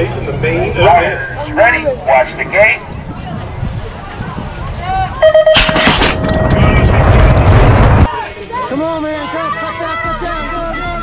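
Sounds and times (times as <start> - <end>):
bike riding noise: 0.0 - 9.0
starting gate beeps: 5.2 - 6.5
gate bang: 5.5 - 6.9
wind rush: 5.8 - 8.1.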